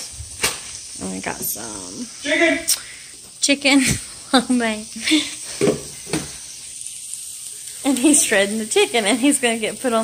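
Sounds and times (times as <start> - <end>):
vegetables sizzling in a skillet: 0.0 - 10.0.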